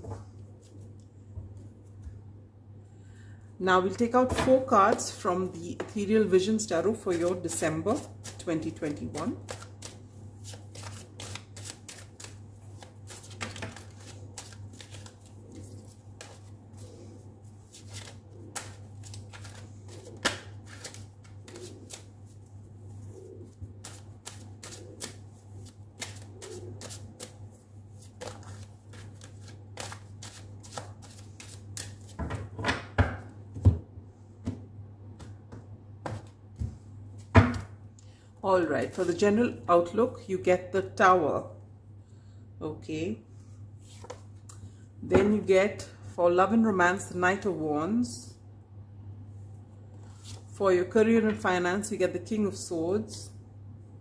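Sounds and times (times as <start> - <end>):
steady low hum: 0.0 - 32.2
cards being shuffled: 7.0 - 22.5, 23.1 - 32.2, 43.8 - 44.3, 50.1 - 50.5.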